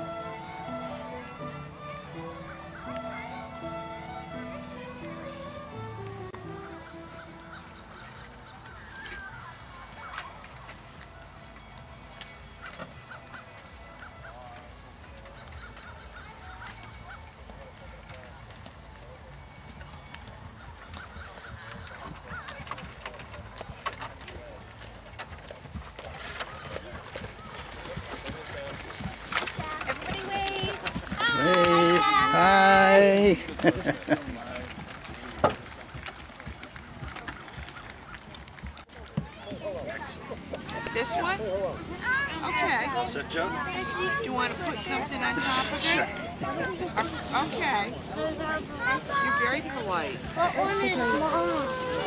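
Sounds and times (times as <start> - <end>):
horse hoofbeats: 0.0 - 52.0
thin steady high tone: 7.1 - 20.8
people's voices: 25.9 - 38.0, 38.9 - 52.0.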